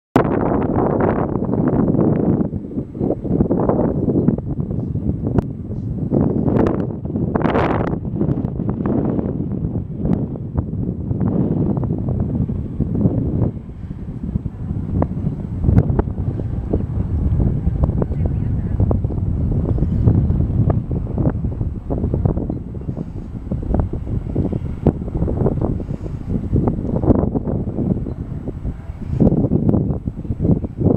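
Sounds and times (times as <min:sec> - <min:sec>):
wind buffeting microphone: 0:00.2 - 0:30.9.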